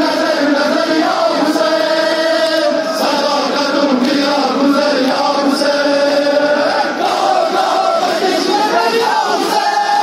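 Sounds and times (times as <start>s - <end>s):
crowd of men chanting lament: 0.0s - 10.0s.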